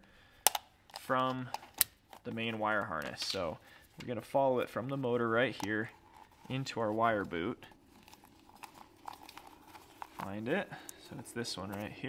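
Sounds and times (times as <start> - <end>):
hands rustling wiring: 0.0 - 12.0
connector clicks: 0.4 - 2.0.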